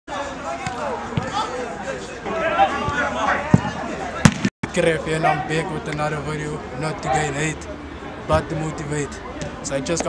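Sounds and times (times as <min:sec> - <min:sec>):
players calling out: 0:00.2 - 0:10.0
ball being kicked: 0:02.9 - 0:04.5.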